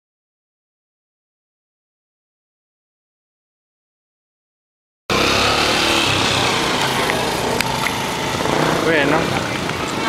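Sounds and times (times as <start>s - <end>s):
motor engine running: 5.1s - 10.0s.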